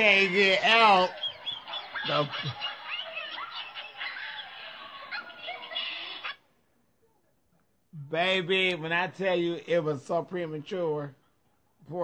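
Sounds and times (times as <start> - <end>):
man laughing: 2.0 - 2.8.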